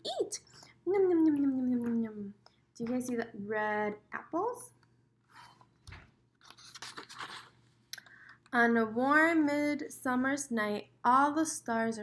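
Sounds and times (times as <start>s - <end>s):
book page turning: 5.3s - 7.6s.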